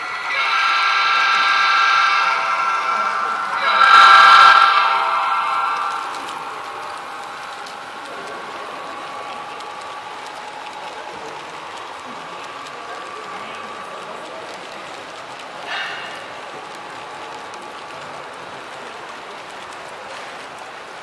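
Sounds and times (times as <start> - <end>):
train clicking on track: 0.0 - 21.0
model train horn: 0.3 - 7.0.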